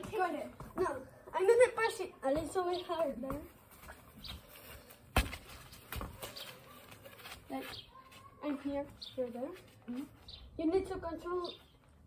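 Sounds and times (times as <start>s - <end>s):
football kicked: 5.1s - 6.2s.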